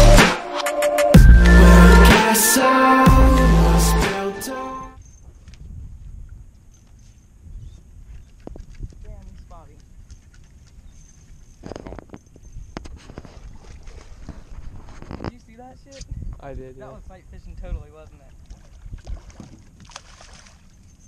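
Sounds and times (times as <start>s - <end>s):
wind rumble on microphone: 5.2s - 10.2s, 10.8s - 19.9s.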